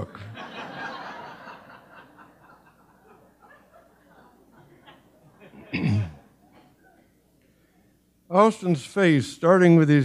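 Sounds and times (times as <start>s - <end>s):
audience laughing: 0.0s - 6.7s.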